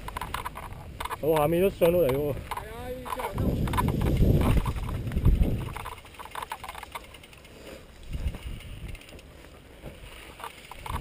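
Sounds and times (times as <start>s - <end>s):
mountain bike rattling on rocky trail: 0.0s - 11.0s.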